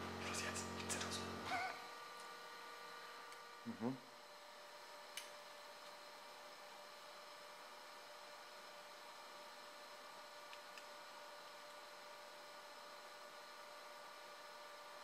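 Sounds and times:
room hum and hiss: 0.0 - 15.0.

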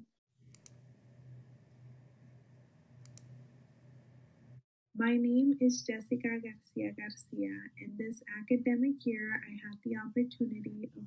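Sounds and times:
computer mouse double clicks: 0.5 - 0.8, 3.0 - 3.4
faint low hum: 0.5 - 11.0.

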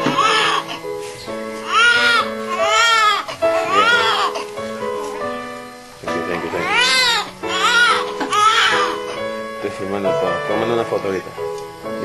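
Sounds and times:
baby crying: 0.0 - 0.9, 1.6 - 4.5, 6.5 - 9.2
background music with held notes: 0.0 - 12.0.

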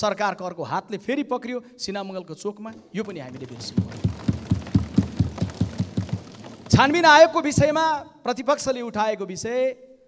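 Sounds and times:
hands thumping desks: 2.8 - 7.8.

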